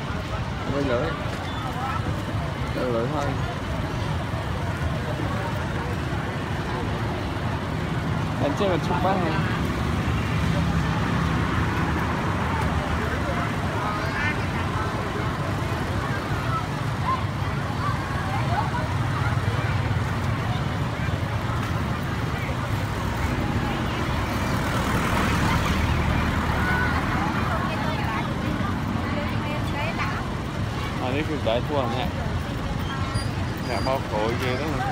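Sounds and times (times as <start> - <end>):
crowd chatter: 0.0 - 34.9
motorbikes and cars passing: 0.0 - 34.9.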